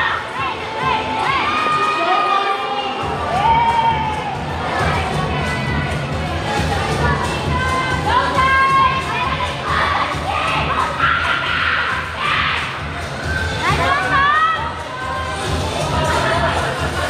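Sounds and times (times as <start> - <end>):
children shouting and cheering: 0.0 - 17.0
dance music beat: 3.0 - 17.0.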